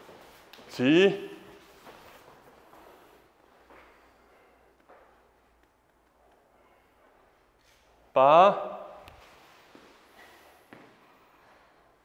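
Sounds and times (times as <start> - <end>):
echo of loud voice: 8.2 - 9.1.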